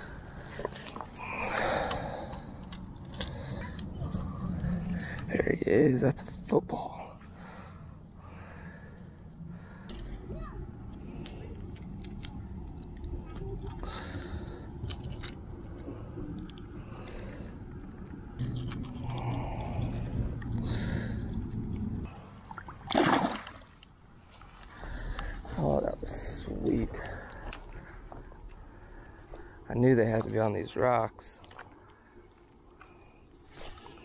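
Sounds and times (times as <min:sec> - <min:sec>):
low rumble on microphone: 0:07.6 - 0:22.1
loud splash: 0:22.8 - 0:23.7.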